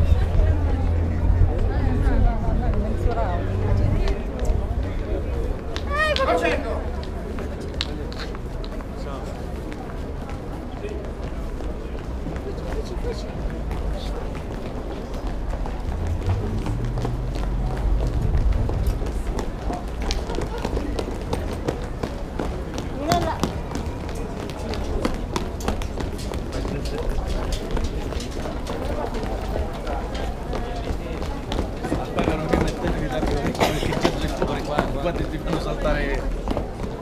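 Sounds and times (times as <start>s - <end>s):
voices: 0.0s - 37.0s
running footsteps on concrete: 2.4s - 37.0s
low rumble: 15.7s - 20.7s.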